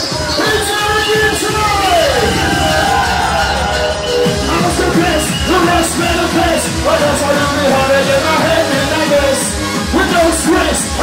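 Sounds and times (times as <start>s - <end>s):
hardcore rave dance music: 0.0s - 11.0s.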